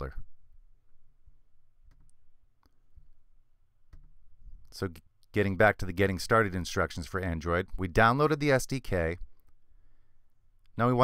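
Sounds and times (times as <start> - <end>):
computer mouse clicks: 1.8 - 2.8.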